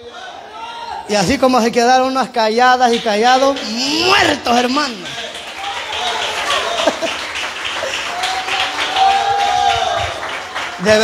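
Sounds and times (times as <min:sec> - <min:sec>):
congregation applauding: 0:02.5 - 0:11.0.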